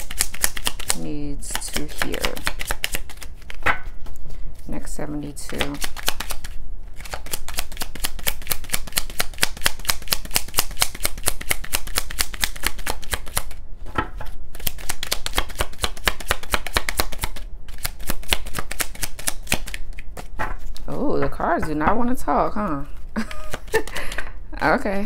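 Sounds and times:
cards shuffled by hand: 0:00.0 - 0:04.3, 0:05.4 - 0:13.6, 0:14.2 - 0:21.1, 0:22.9 - 0:24.2.

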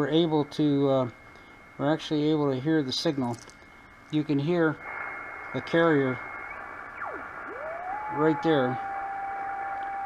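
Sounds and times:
sweeping radio tone: 0:04.2 - 0:10.0
radio beat-note whistle: 0:04.7 - 0:10.0.

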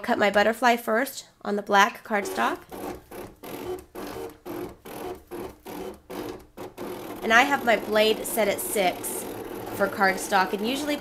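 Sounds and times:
cutting machine motors whirring: 0:02.2 - 0:11.0.

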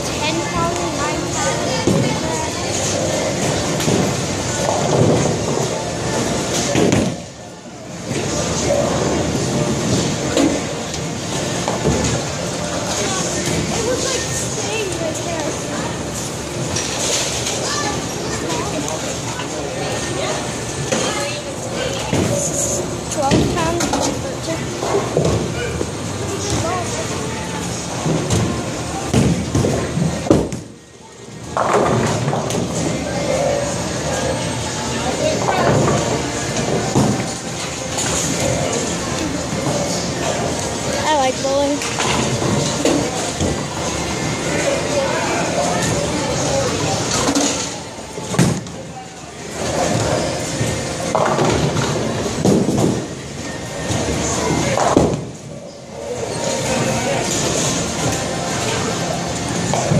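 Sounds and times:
chatter of people: 0:00.0 - 0:59.9.

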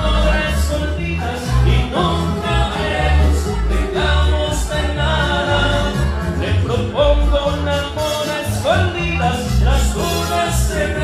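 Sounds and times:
amplified backing track: 0:00.0 - 0:11.0
man singing karaoke: 0:00.0 - 0:11.0.

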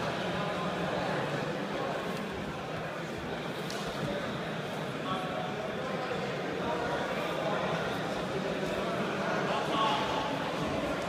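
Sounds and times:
hall background murmur: 0:00.0 - 0:11.0.

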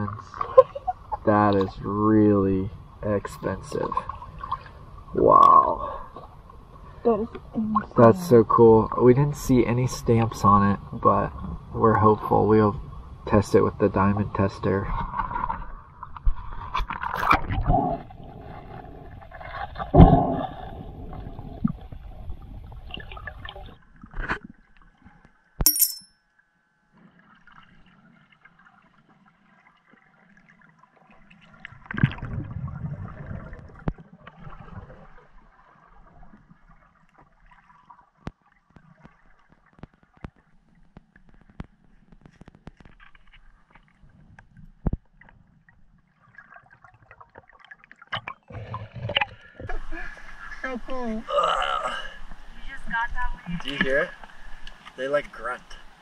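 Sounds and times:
underwater gurgling bubbles: 0:14.9 - 0:24.8, 0:27.2 - 0:40.8
water splashing and gurgling: 0:15.0 - 0:25.0, 0:27.1 - 0:54.9
faint underwater clicks: 0:53.6 - 0:55.8.

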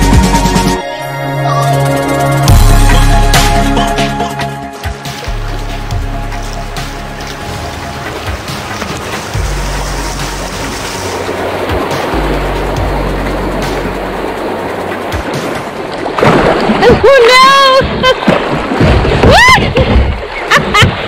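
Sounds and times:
background music: 0:00.0 - 0:17.4
river rapids rushing: 0:03.9 - 0:19.5.

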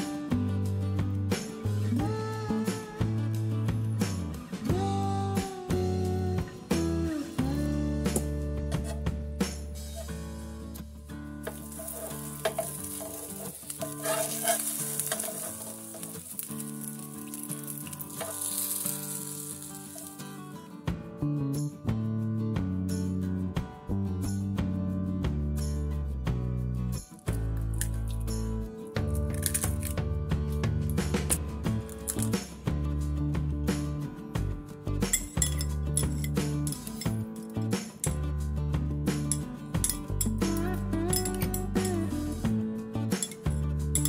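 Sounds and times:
quiet background music: 0:00.0 - 0:44.0
toast sizzling in hot oil: 0:11.4 - 0:20.4
metal spoon clinking on glass bowl: 0:35.1 - 0:37.2.

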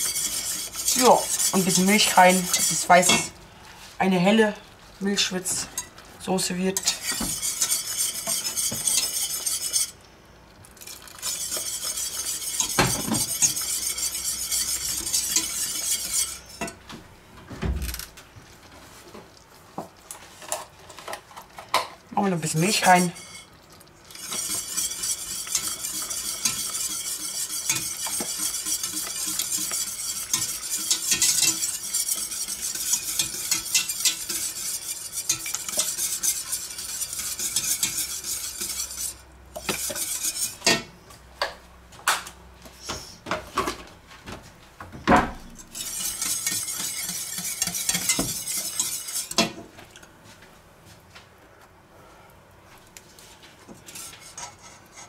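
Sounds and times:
whisk scraping metal pot: 0:00.0 - 0:03.4, 0:05.1 - 0:10.0, 0:10.8 - 0:16.8, 0:22.2 - 0:40.9, 0:45.5 - 0:50.0, 0:53.7 - 0:55.0.

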